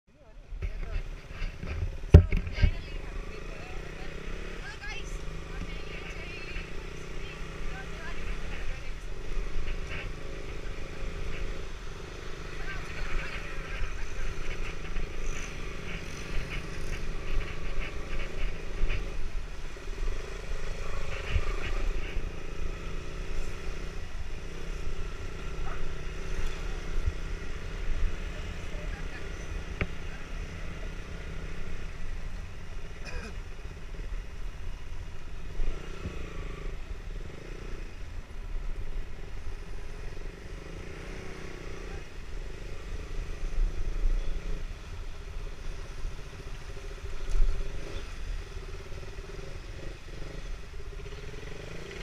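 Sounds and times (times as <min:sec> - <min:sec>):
motorcycle engines rumbling: 0:00.1 - 0:52.0
people talking: 0:00.2 - 0:11.5, 0:12.4 - 0:19.1, 0:20.7 - 0:22.2, 0:25.6 - 0:27.1, 0:28.2 - 0:31.2.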